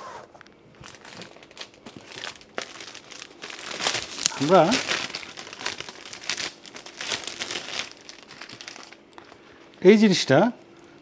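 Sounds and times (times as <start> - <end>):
plastic bag crinkling: 0.7 - 9.4.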